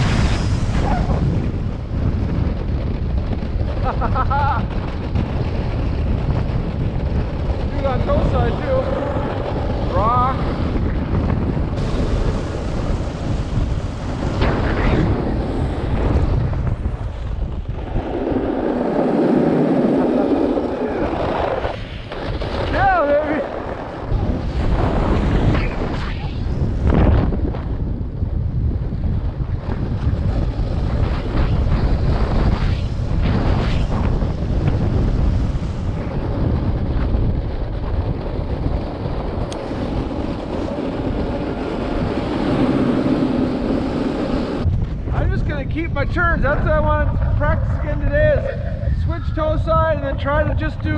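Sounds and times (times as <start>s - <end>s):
snowboard scraping snow: 0.0s - 27.7s, 29.6s - 45.6s
wind buffeting microphone: 0.0s - 50.9s.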